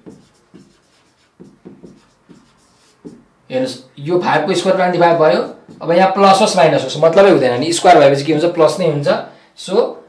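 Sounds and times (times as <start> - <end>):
marker pen writing on whiteboard: 0.0 - 3.3, 4.5 - 6.6.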